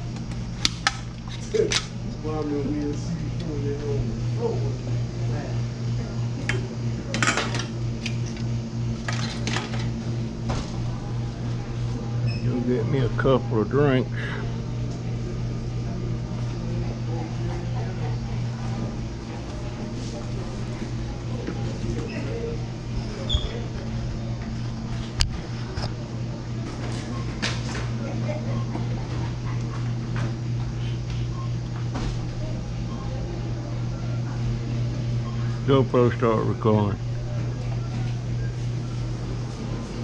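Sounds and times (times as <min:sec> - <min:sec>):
low indoor hum: 0:00.0 - 0:40.0
faint indistinct voices: 0:01.3 - 0:40.0.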